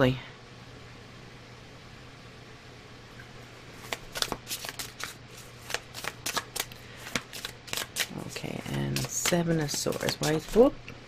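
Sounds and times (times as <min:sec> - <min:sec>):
faint steady low hum: 0:00.0 - 0:11.0
cards shuffling by hand: 0:03.8 - 0:10.8.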